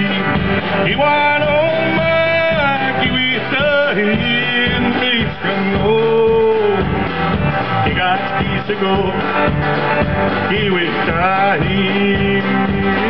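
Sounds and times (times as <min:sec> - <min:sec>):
bass: 0:00.0 - 0:13.0
guitar: 0:00.0 - 0:13.0
person singing: 0:00.0 - 0:13.0.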